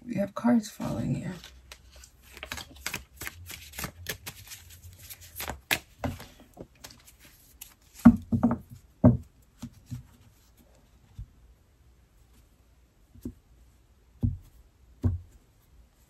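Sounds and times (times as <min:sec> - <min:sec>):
cards shuffled by hand: 0:01.3 - 0:08.1.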